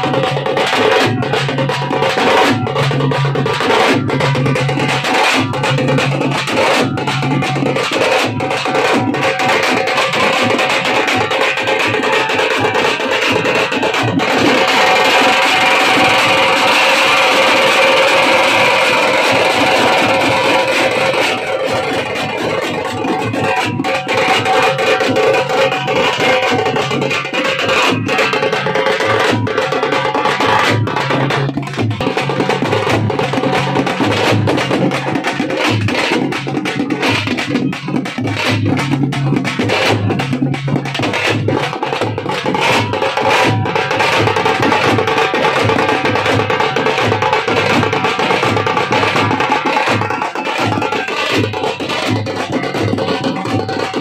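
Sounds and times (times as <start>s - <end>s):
fast folk drumming with sticks: 0.0s - 54.0s.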